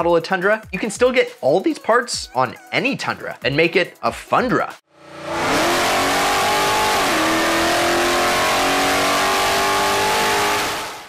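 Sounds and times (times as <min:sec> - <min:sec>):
engine revving under load: 0:04.9 - 0:11.0.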